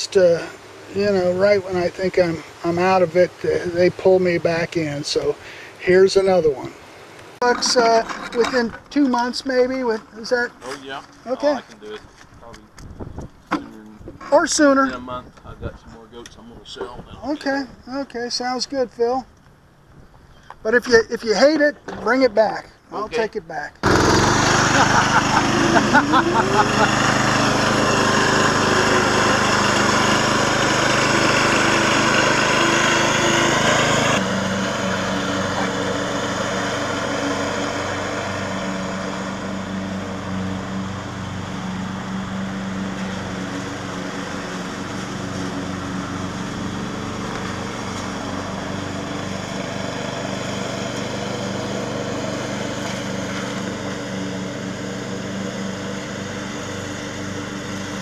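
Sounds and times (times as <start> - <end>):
riding mower engines running: 0.0 - 58.0.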